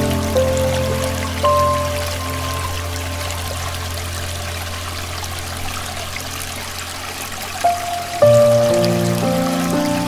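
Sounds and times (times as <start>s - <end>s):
stream water running: 0.0s - 10.0s.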